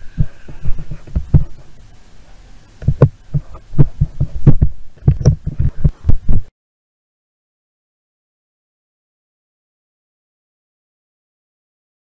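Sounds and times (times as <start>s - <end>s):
dull thumps: 0.2s - 1.7s, 2.8s - 6.5s.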